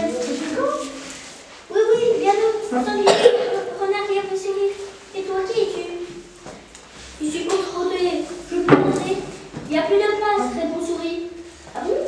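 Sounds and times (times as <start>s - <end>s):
child speaking: 0.0s - 6.4s, 7.2s - 12.0s.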